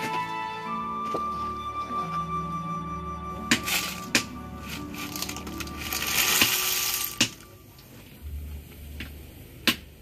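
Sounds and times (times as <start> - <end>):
snail shells clattering into a pan: 3.5 - 7.6.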